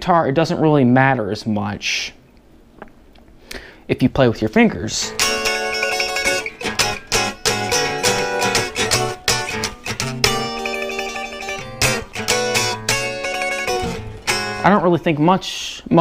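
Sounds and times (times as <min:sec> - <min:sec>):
electric guitar strummed with fingers: 0:05.0 - 0:15.2.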